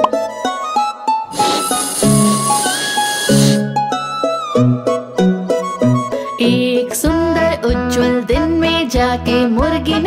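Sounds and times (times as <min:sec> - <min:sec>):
cheerful instrumental music: 0:00.0 - 0:10.0
balloon inflating hissing whoosh: 0:01.3 - 0:03.7.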